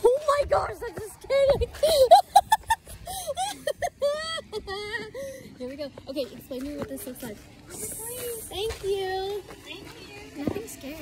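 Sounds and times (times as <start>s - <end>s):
person laughing: 1.7s - 5.2s.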